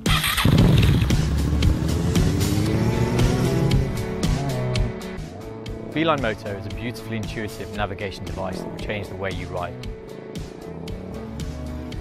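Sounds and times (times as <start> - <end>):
motorcycle engine accelerating: 0.0 - 12.0
background music with a beat: 0.6 - 12.0.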